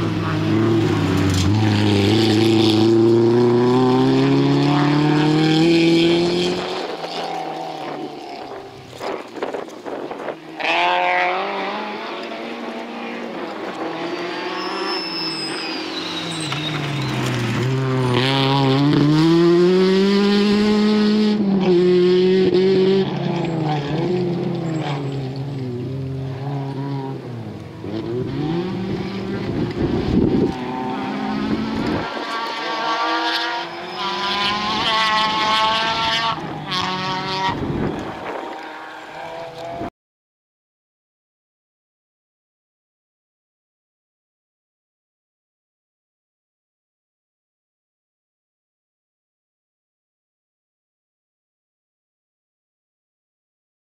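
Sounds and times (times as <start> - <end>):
rally car engine revving: 0.0 - 39.9.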